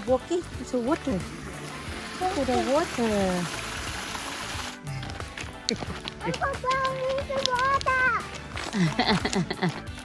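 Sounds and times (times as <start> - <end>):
stream of water trickling: 0.0 - 4.8.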